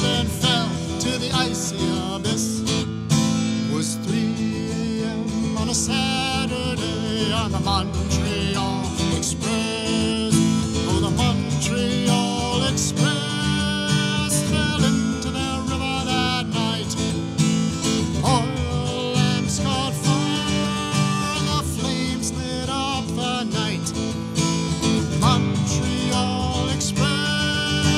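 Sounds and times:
acoustic guitar strumming: 0:00.0 - 0:27.9
man singing: 0:00.0 - 0:27.9.

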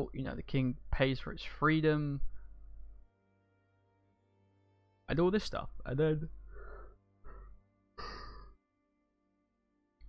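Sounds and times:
man breathing: 0:06.4 - 0:08.5
man sighing: 0:06.6 - 0:08.6.

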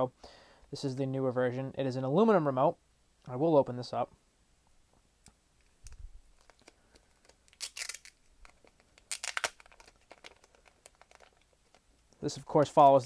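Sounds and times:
plastic film crinkling: 0:05.8 - 0:13.0
plastic film ripping: 0:06.4 - 0:11.8.

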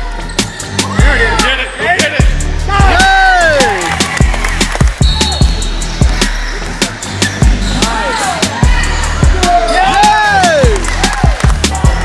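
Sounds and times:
sneakers squeaking: 0:00.0 - 0:01.0, 0:04.4 - 0:09.0.

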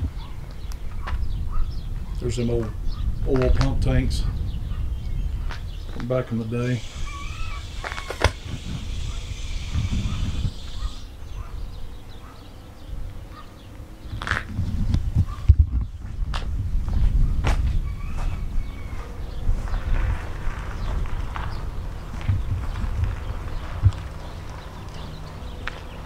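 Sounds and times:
wind rumbling on microphone: 0:00.0 - 0:26.0
steady hiss: 0:06.6 - 0:11.2.

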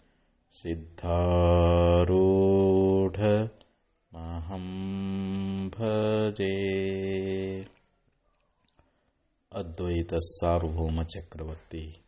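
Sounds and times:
man chanting: 0:00.5 - 0:07.8, 0:09.5 - 0:12.0.

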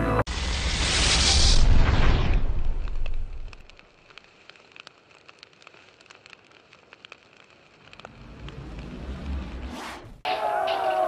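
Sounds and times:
low rumble: 0:00.1 - 0:03.8
crackles and ticks: 0:02.2 - 0:09.7.

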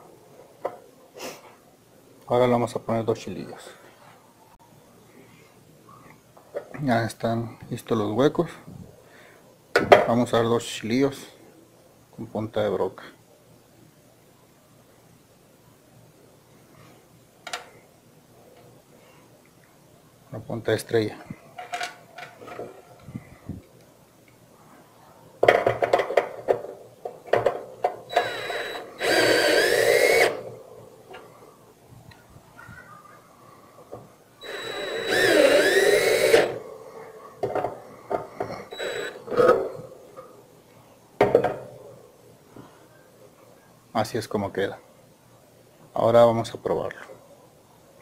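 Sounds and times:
drill driving screws into metal: 0:28.1 - 0:30.6, 0:34.4 - 0:36.6, 0:38.7 - 0:39.4.

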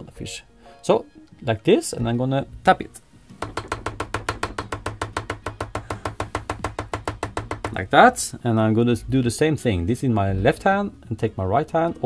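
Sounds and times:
hair stacker tapping on bench: 0:03.4 - 0:07.8.

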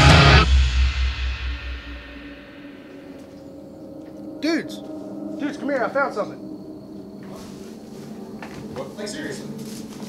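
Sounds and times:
hard rock band playing: 0:00.0 - 0:03.1.

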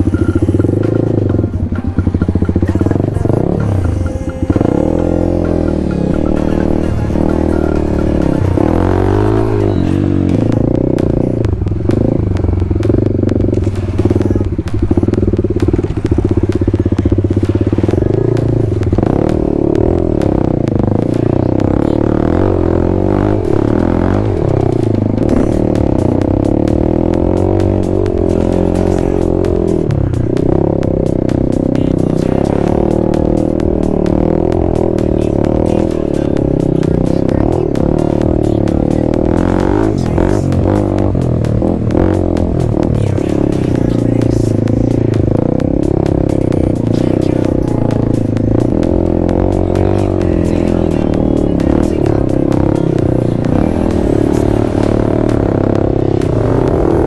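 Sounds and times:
background music: 0:00.0 - 0:57.0
dirt bike engine revving: 0:00.0 - 0:57.0.

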